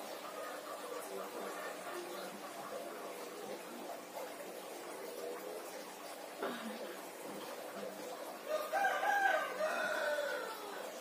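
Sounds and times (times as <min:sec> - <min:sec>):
rooster crowing: 0:08.5 - 0:10.9.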